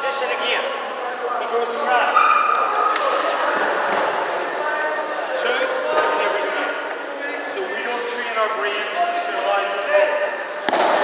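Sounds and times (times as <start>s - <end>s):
indistinct voices in echoing hall: 0.0s - 11.0s.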